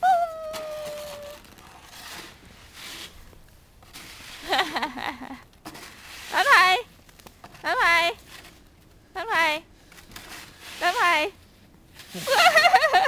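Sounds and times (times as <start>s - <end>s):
high-pitched held vocal sound: 0.0s - 1.4s.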